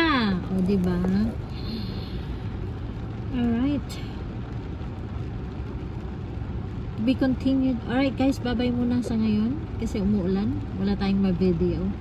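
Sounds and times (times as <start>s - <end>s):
low steady rumble: 0.0s - 12.0s
rain on car roof: 0.0s - 12.0s.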